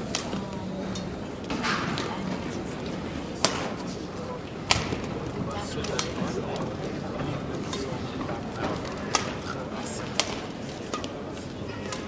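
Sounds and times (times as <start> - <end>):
hall background noise: 0.0 - 12.0
voices: 0.0 - 12.0.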